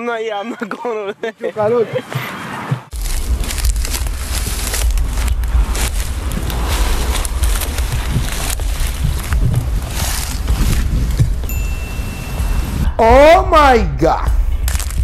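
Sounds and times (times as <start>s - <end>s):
wind buffeting microphone: 2.9s - 15.0s.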